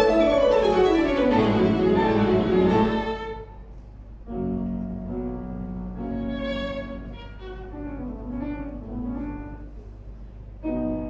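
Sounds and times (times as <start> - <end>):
violin and piano chamber music: 0.0 - 3.7, 4.4 - 9.8.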